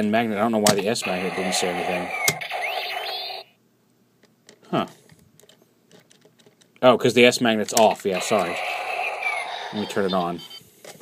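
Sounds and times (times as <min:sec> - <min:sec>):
electronic toy sound effect: 0:01.0 - 0:03.5, 0:08.1 - 0:10.6.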